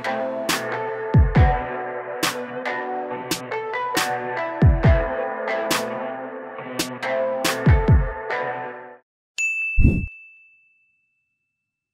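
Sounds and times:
bright electronic ding: 0:09.4 - 0:10.7.

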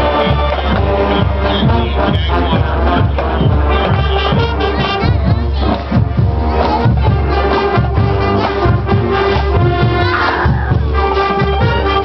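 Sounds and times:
crowd voices: 0:00.0 - 0:12.0
marching band playing: 0:00.0 - 0:12.0.

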